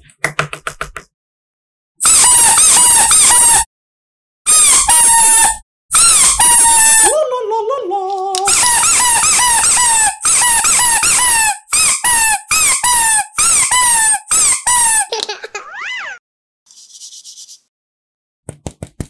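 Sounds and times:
squeaky toy squeaks: 0:02.0 - 0:03.7, 0:04.5 - 0:07.1, 0:08.5 - 0:16.2.

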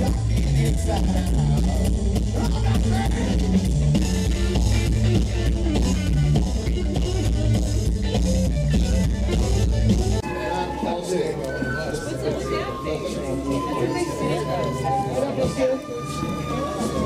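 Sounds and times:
drum kit: 0:00.0 - 0:10.4
electric guitar: 0:00.0 - 0:10.8
bass guitar: 0:00.0 - 0:17.0.

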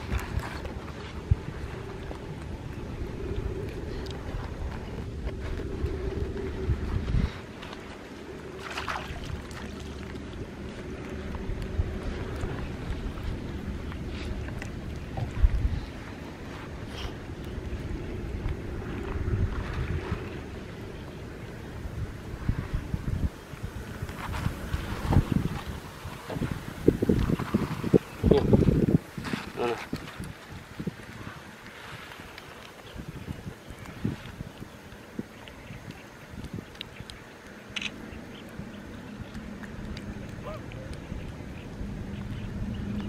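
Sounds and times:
wind rumbling on microphone: 0:00.0 - 0:43.0.

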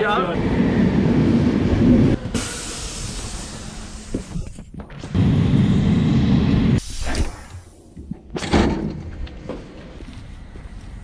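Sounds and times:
train low rumble: 0:00.0 - 0:11.0
loud air hiss: 0:02.2 - 0:04.6, 0:06.7 - 0:07.8.

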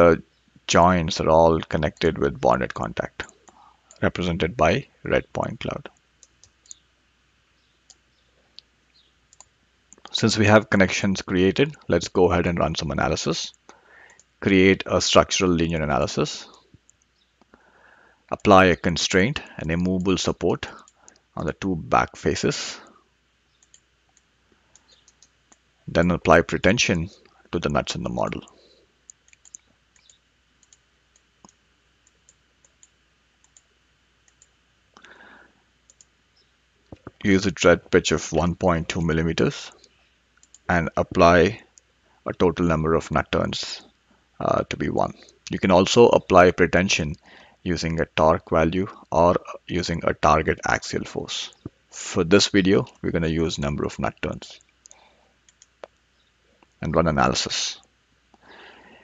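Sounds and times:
computer mouse clicks: 0:06.0 - 0:06.8, 0:07.6 - 0:10.1, 0:23.5 - 0:25.6, 0:29.1 - 0:35.1, 0:35.9 - 0:37.2, 0:40.4 - 0:40.7, 0:54.6 - 0:56.0.

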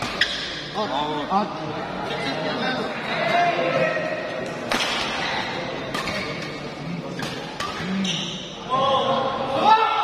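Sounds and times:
men shouting in a large hall: 0:08.6 - 0:10.0.

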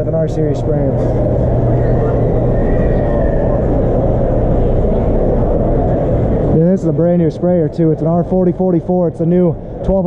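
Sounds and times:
crowded hall rumble: 0:00.0 - 0:10.0
faint steady hum: 0:00.0 - 0:10.0.

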